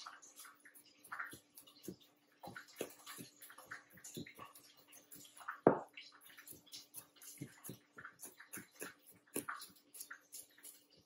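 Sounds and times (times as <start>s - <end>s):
knife chopping on plastic board: 1.2s - 10.9s.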